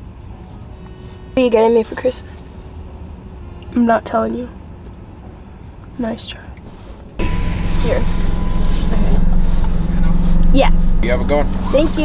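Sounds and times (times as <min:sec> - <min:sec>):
car engine hum inside cabin: 0:01.6 - 0:12.0.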